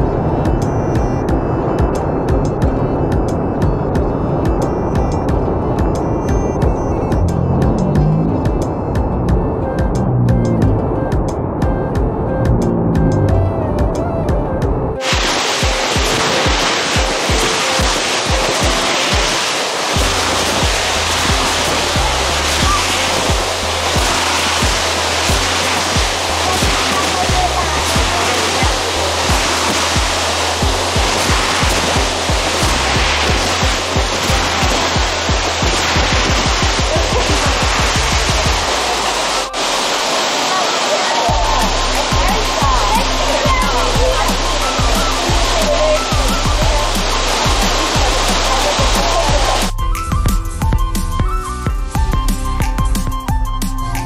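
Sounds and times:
music with bass beat: 0.0 - 39.6, 41.3 - 54.0
waterfall rushing: 15.0 - 50.1.

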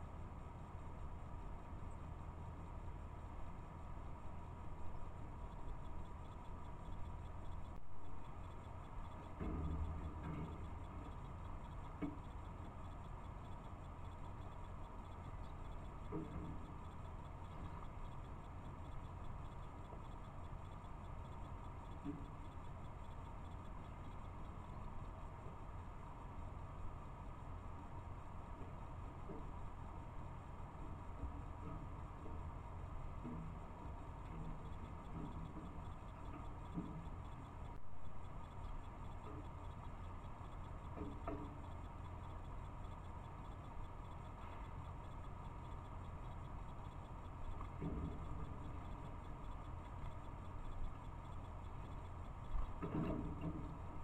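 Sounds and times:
faint steady whine: 0.0 - 54.0
microphone hiss and hum: 0.0 - 54.0.

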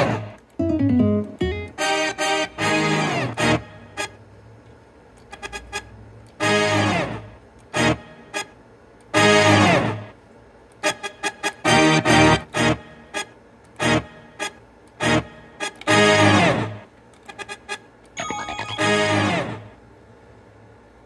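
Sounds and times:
brief pitched instrument notes: 0.6 - 2.0, 18.2 - 19.6.

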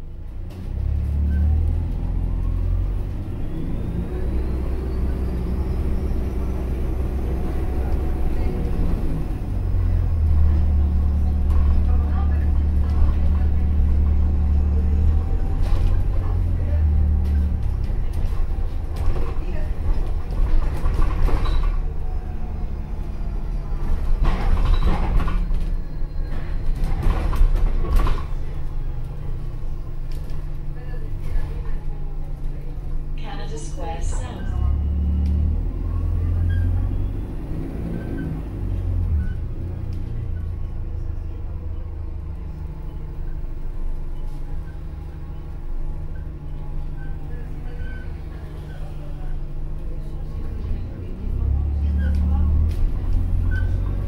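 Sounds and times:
bus engine hum: 0.0 - 54.0
road rumble: 0.0 - 54.0.

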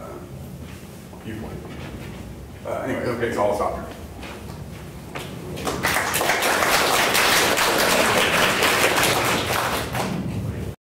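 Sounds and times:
audience applauding: 5.6 - 10.2.

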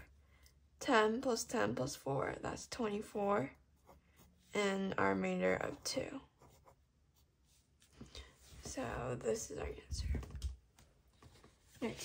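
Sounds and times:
pencil scratching on paper: 0.0 - 0.6, 2.9 - 7.8.

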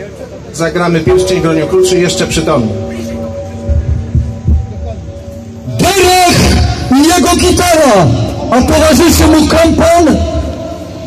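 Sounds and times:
faint crowd voices: 0.0 - 11.0
muffled microphone thumps: 3.7 - 5.1.

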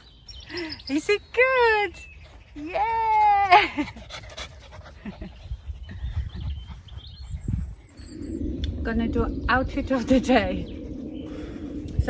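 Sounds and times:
dog panting: 3.8 - 8.2
wind on microphone: 5.0 - 12.0.

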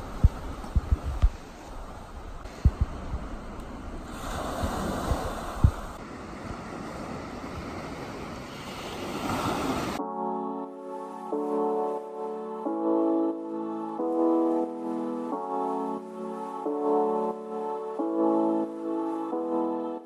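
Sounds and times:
wind thumps on microphone: 0.0 - 6.0
ocean waves washing ashore: 0.0 - 20.0
soft piano music: 10.0 - 20.0.

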